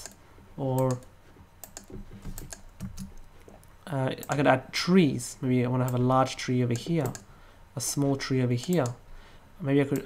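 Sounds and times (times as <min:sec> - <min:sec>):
mouse and keyboard clicks: 0:00.8 - 0:04.4.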